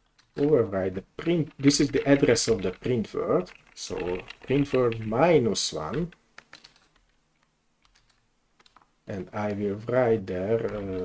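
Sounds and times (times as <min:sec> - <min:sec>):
computer keyboard keystrokes: 0:05.9 - 0:07.2, 0:07.8 - 0:08.9.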